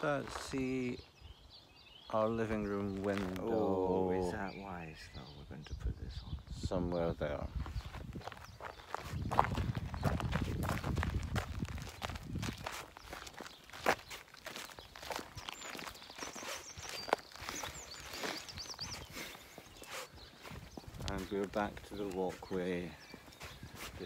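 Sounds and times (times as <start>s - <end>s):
footsteps on gravel: 0.0s - 1.0s, 2.3s - 4.5s, 7.5s - 24.0s.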